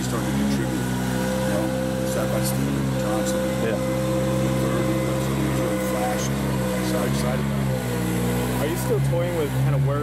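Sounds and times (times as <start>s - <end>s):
engine humming steadily: 0.0s - 10.0s.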